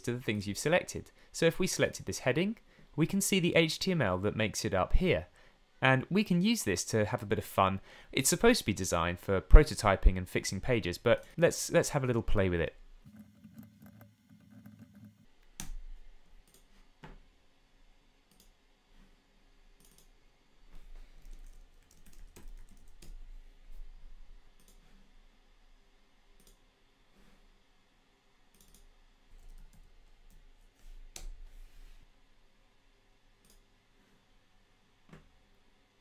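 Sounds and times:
computer keyboard typing: 19.8s - 20.1s, 21.2s - 23.2s, 28.5s - 30.4s.

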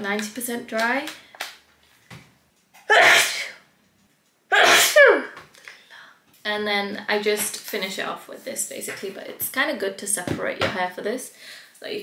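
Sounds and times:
woman sneezing: 2.9s - 3.6s, 4.5s - 5.4s.

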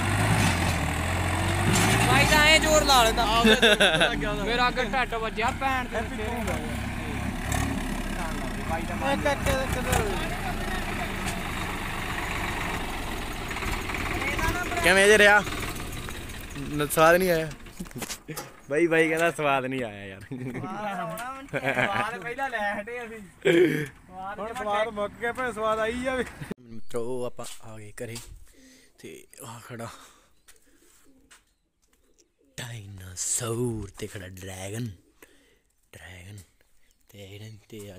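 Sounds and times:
diesel tractor engine running: 0.0s - 18.0s
man's voice: 2.1s - 7.2s, 8.1s - 11.2s
pigeons cooing softly: 30.2s - 32.9s.

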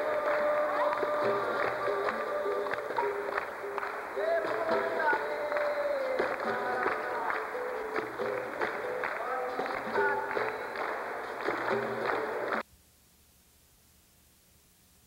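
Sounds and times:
berimbau struck rhythmically: 0.0s - 12.6s
hand clapping: 0.0s - 12.6s
voices singing: 0.0s - 12.6s
shakers: 0.0s - 12.7s.

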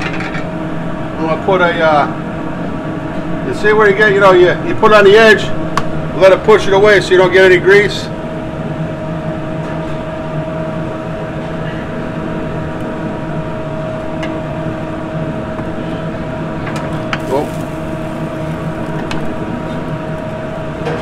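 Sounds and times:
kitchen equipment humming: 12.6s - 21.0s.

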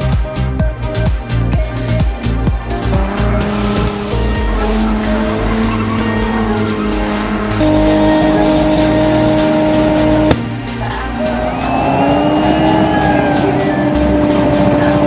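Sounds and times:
music: 0.0s - 15.0s
car engine revving high: 2.6s - 15.0s.

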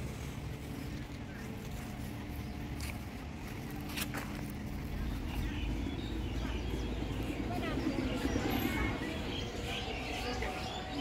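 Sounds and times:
low rumble: 0.0s - 10.3s
distant voices: 0.0s - 11.0s.

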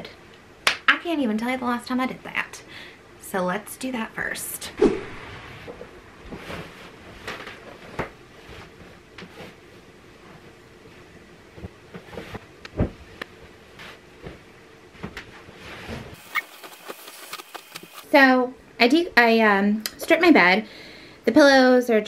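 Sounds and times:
bedding rustling and swishing: 4.8s - 16.8s.

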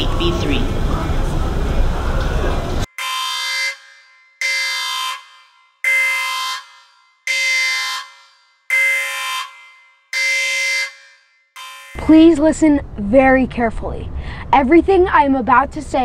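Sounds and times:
alarm buzzer blasts: 2.9s - 12.1s.

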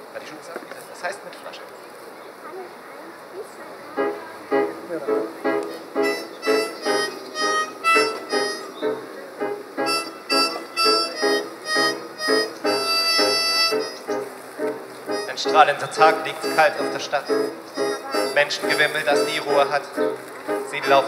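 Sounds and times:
piano accompaniment: 4.0s - 21.0s
harmonica chugging chords: 6.0s - 14.3s, 15.0s - 19.8s.

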